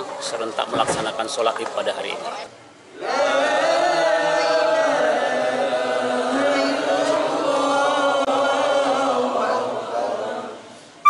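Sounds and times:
men chanting in unison: 2.9s - 10.7s.

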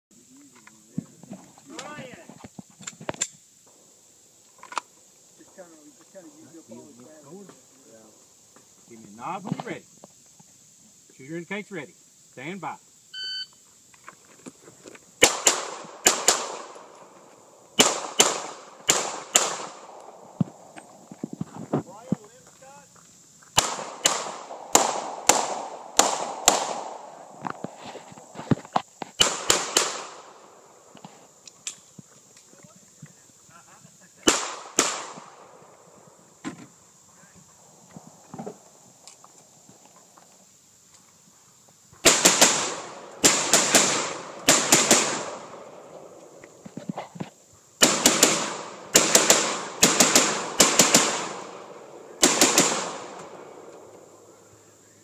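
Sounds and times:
people talking: 0.2s - 2.3s, 5.4s - 8.1s, 8.9s - 9.8s, 21.8s - 22.9s, 32.5s - 34.3s
pistol shots echoing: 15.2s - 16.9s, 17.8s - 20.2s, 23.6s - 27.3s, 29.2s - 30.4s, 34.3s - 35.5s, 42.0s - 45.8s, 47.8s - 53.8s.

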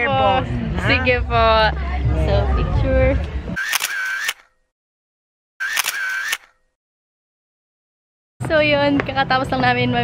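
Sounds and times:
camera shutter: 3.6s - 4.6s, 5.6s - 6.7s.

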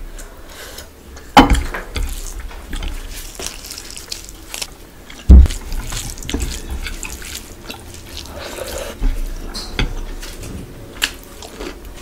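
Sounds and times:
fingers squelching in food: 2.0s - 9.2s
loud low thump: 5.3s - 5.5s.

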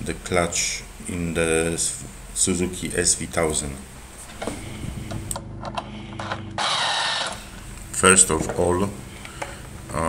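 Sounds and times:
small machine humming and clicking: 4.2s - 10.0s.

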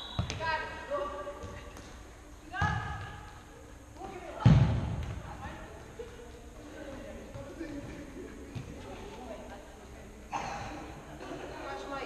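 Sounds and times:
ball struck with a thud: 4.4s - 5.2s.

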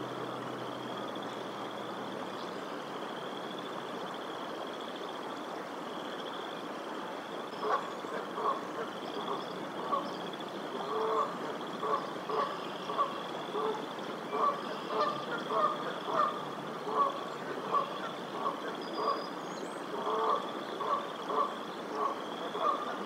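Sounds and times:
goose honking: 10.8s - 19.2s, 20.0s - 23.0s.

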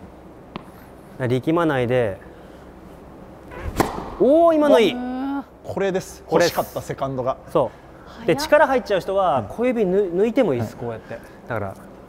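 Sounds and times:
racket striking ball: 0.5s - 0.8s, 3.6s - 4.3s
racket swishing through air: 3.5s - 4.2s.

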